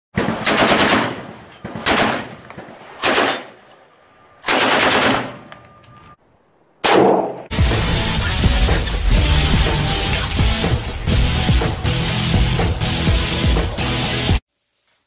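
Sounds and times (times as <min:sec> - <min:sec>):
rapid gunshots: 0:00.2 - 0:02.4, 0:03.0 - 0:03.5, 0:04.5 - 0:05.4
loud intro music: 0:07.5 - 0:14.4.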